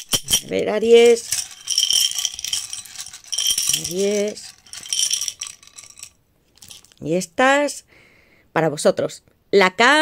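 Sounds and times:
wooden tiles rattling in glass cup: 0.0 - 7.1.

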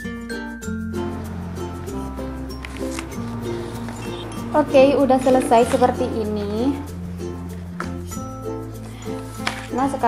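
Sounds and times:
instrumental music with bass: 0.0 - 9.7
light plucked notes: 0.9 - 10.0.

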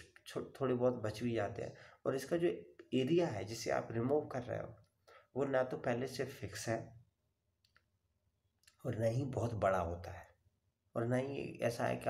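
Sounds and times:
man speaking: 0.0 - 7.0, 8.7 - 12.0.

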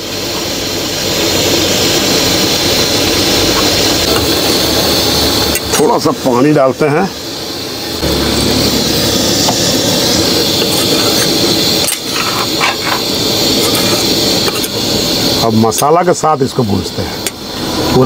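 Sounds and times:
masala sizzling in a hot pan: 0.0 - 18.0.

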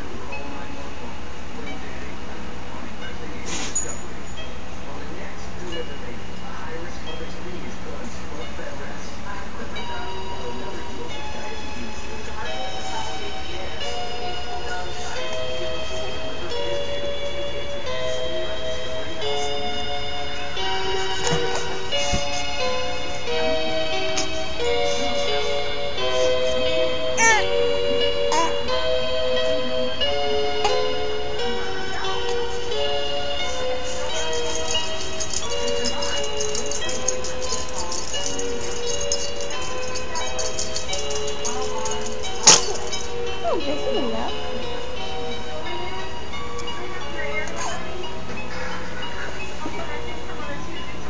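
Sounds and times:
crib mobile playing lullaby: 0.0 - 51.0.

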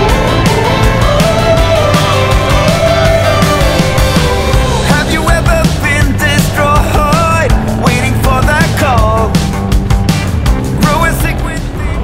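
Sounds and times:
loud rock music: 0.0 - 12.0.

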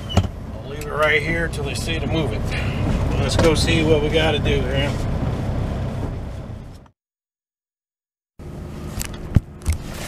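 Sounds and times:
truck diesel engine idling: 0.0 - 6.6.

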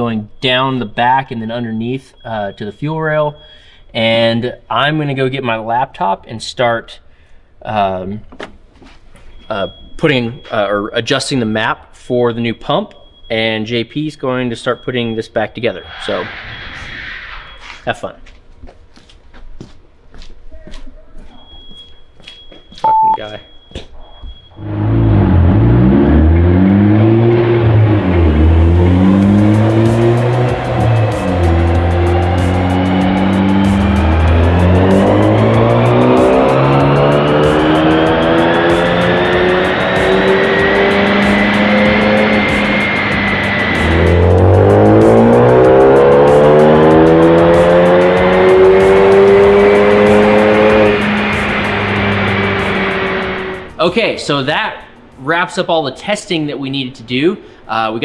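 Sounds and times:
car engine revving hard: 24.6 - 53.8.

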